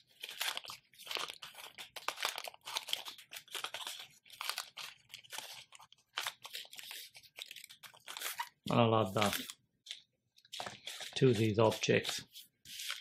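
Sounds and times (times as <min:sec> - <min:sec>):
plastic wrapper crackling: 0:00.1 - 0:10.0.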